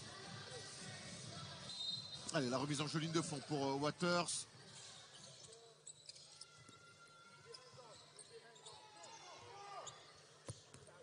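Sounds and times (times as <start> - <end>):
sneaker squeaks: 1.6 - 2.6, 4.7 - 11.0.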